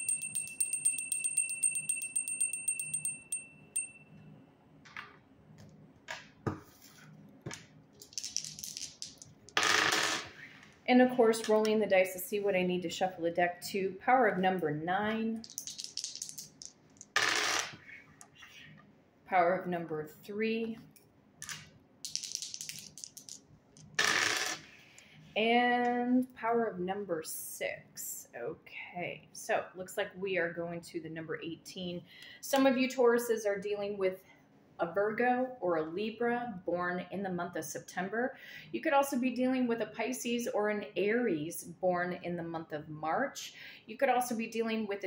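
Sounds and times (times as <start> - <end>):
small hand bell ringing rapidly: 0.0 - 4.1
dice rolling on a table: 7.5 - 10.4, 15.4 - 17.8, 21.4 - 24.6.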